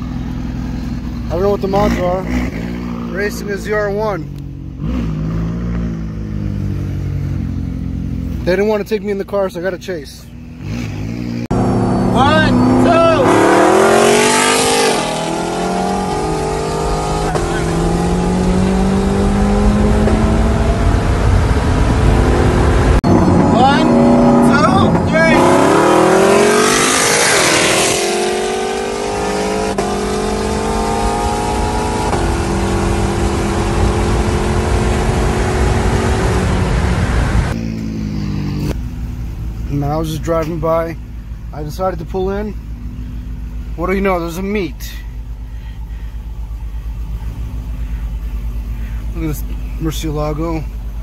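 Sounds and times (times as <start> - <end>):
wind and road noise: 0.0 - 51.0
car engine accelerating hard: 10.5 - 51.0.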